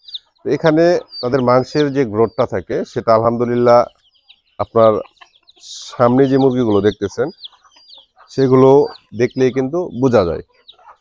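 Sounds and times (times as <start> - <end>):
chickens clucking: 0.0 - 11.0
chicks peeping: 0.0 - 11.0.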